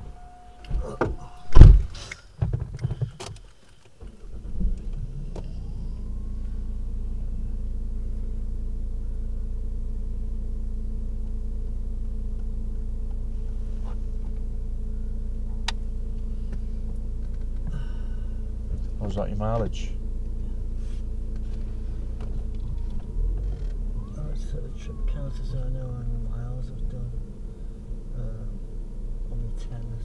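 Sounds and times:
car engine hum from inside: 0.0 - 30.0.

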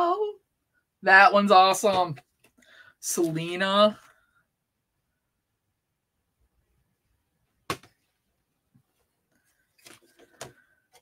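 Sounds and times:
paper rustling: 9.3 - 10.7.

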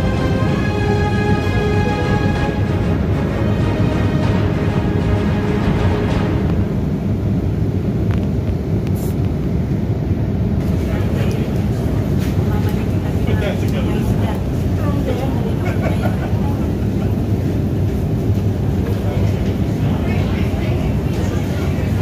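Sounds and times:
indistinct voices: 0.0 - 7.1, 10.6 - 22.0
airliner cabin drone: 0.0 - 22.0.

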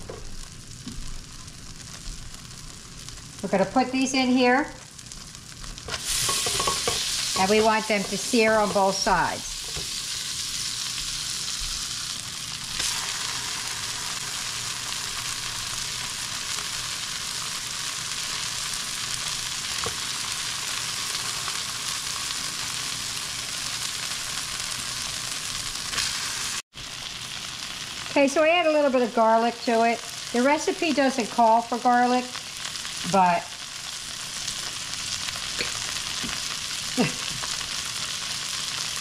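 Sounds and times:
meat sizzling in a skillet: 0.0 - 39.0.

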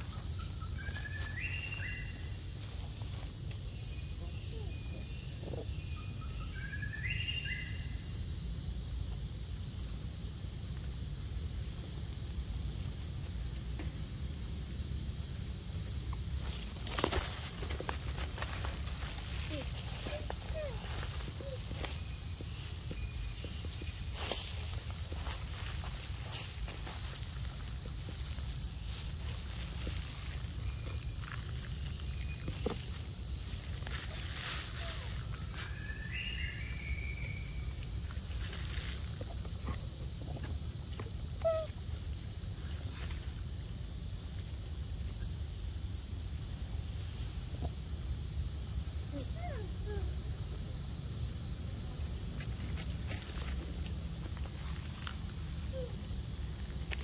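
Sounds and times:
soft clicks and leaf rustles: 14.7 - 35.8, 37.8 - 39.3.

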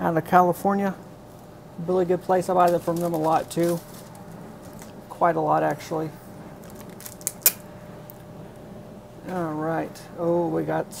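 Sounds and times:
envelope crinkling: 2.6 - 5.0, 6.6 - 7.6.

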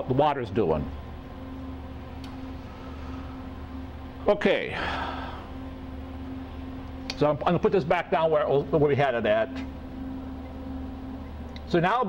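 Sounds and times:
machine electrical hum: 0.0 - 12.0.

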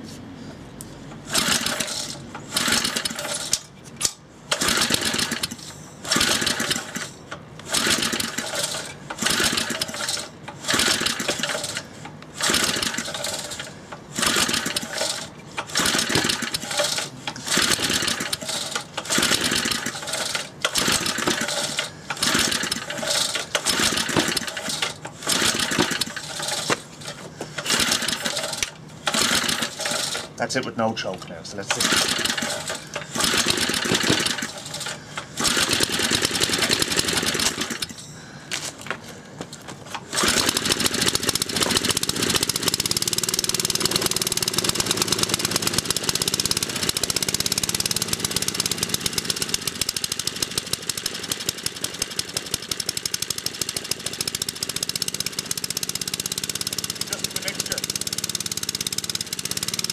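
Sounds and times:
recoil starter rope pulls: 1.2 - 59.9.

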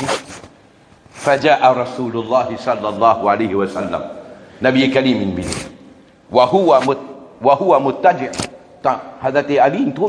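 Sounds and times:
man preaching: 1.2 - 10.0.

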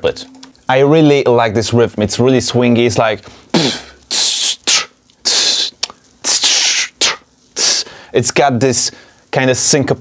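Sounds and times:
man beatboxing hissing bursts: 3.5 - 8.1.

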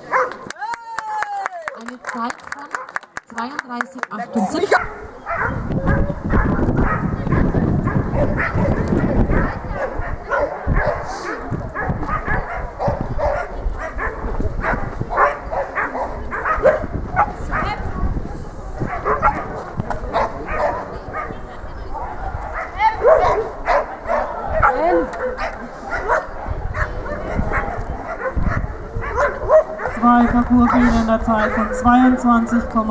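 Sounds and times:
dog barking and yipping: 0.1 - 0.4, 4.7 - 17.8, 18.9 - 19.5, 20.1 - 21.4, 22.0 - 32.0.

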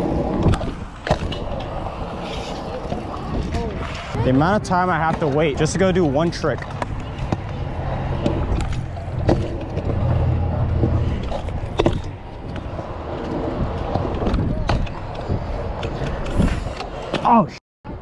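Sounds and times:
scooter wheels rolling on concrete: 0.0 - 17.3.

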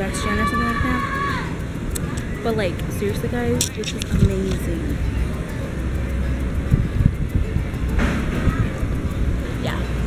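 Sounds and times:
low outdoor rumble: 0.0 - 10.0.

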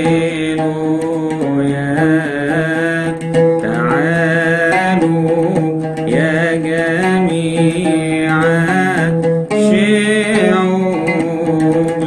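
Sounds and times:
oud accompaniment: 0.0 - 12.0
man chanting a hymn: 3.6 - 5.5, 6.1 - 12.0.

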